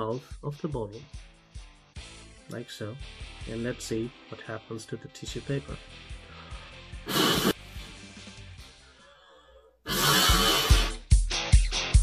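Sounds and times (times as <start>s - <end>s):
quick breath in: 6.3s - 7.9s
background music with drum beat: 7.0s - 8.8s, 9.9s - 12.0s
blowing into plastic bottle: 7.1s - 7.6s, 9.9s - 11.0s.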